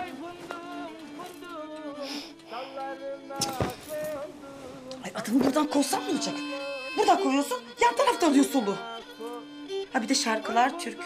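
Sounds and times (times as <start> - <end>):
fiddle playing folk tune: 4.1 - 11.0.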